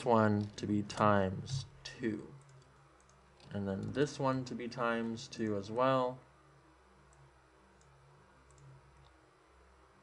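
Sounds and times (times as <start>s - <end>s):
low steady hum: 0.0s - 10.0s
computer mouse and keyboard clicks: 7.8s - 9.2s.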